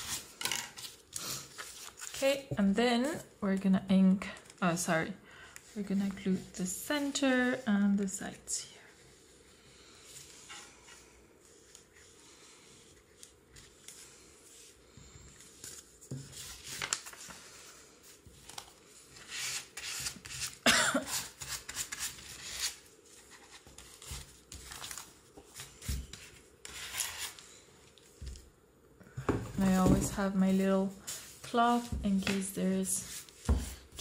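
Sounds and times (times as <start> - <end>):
paper rustling: 0.0 - 2.5, 15.4 - 27.5.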